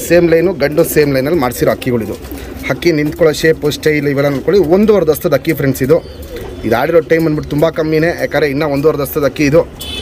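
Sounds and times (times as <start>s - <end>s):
pigeons cooing: 0.0s - 9.2s.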